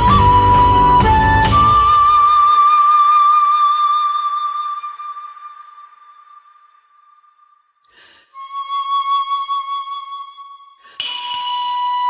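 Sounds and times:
breathy flute notes: 0.0 - 12.0.

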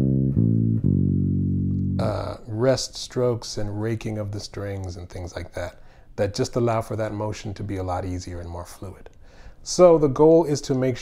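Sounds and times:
electric bass guitar notes: 0.0 - 2.9.

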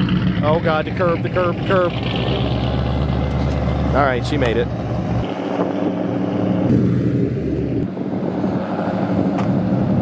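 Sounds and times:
car engine running steadily: 0.0 - 10.0.

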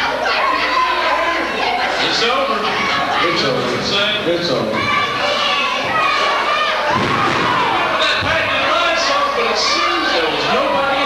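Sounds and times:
children yelling and shouting: 0.0 - 11.0.

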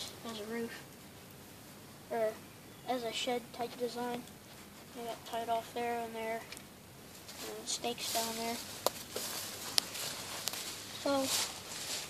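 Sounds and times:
footsteps on forest floor: 7.2 - 12.0.

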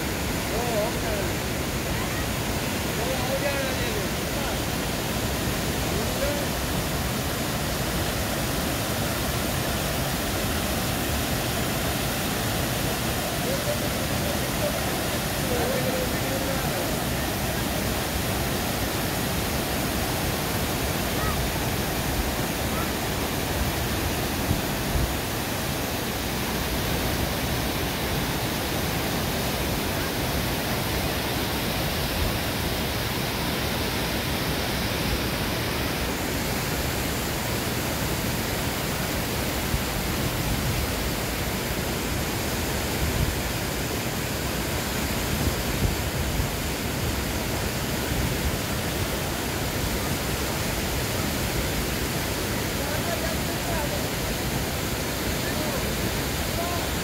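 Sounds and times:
stream cascading over rocks: 0.0 - 57.0
waterfall rushing: 0.0 - 57.0.

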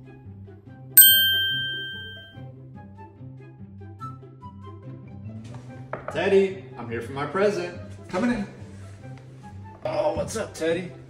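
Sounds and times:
phone notification ding: 1.0 - 2.3.

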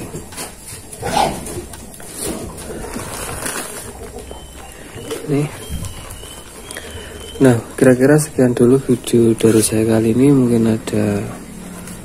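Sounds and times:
plant cuttings rustling: 0.0 - 12.0
plastic bag crinkling: 0.0 - 12.0.

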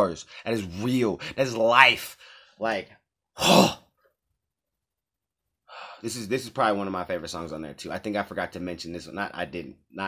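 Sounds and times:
man breathing in: 2.2 - 2.6, 5.7 - 6.0.

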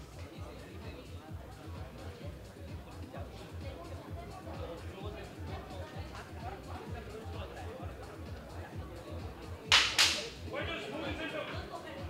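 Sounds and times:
music with steady beat: 0.0 - 10.6.

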